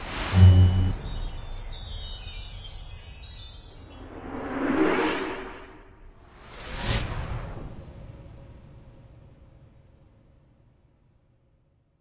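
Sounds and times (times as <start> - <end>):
shimmering chime-like tinkling: 0.4 - 4.4.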